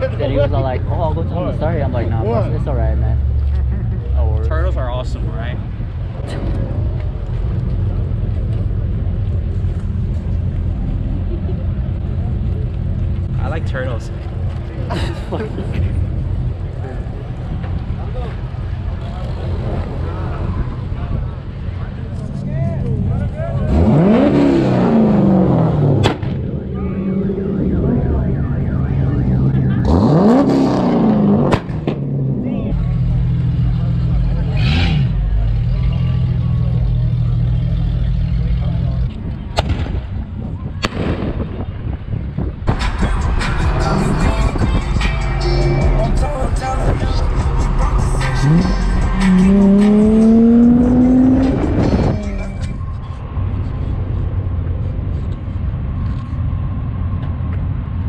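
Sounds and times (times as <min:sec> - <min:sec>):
car engine revving: 0:22.0 - 0:39.1, 0:42.7 - 0:53.0.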